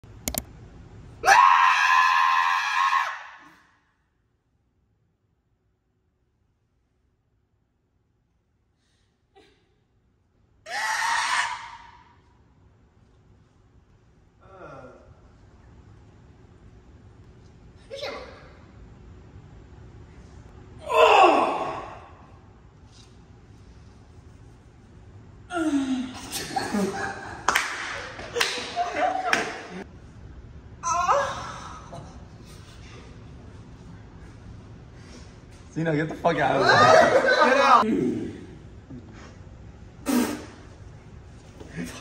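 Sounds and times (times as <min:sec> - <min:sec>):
sharp clicks: 0:00.2 - 0:00.5
loud high-pitched scream: 0:01.2 - 0:03.7, 0:10.7 - 0:12.2.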